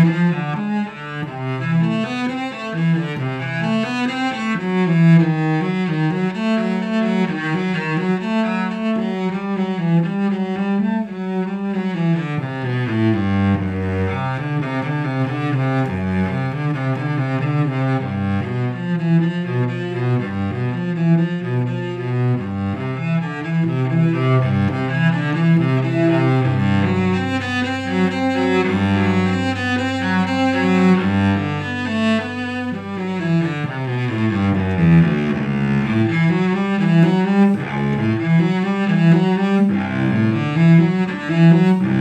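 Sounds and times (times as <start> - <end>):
bowed cello: 0.0 - 42.0.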